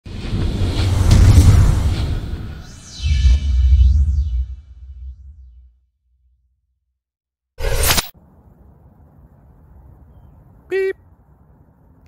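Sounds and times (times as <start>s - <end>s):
whoosh sound effect: 0.1s - 5.7s
low outdoor hiss and rumble: 8.2s - 12.0s.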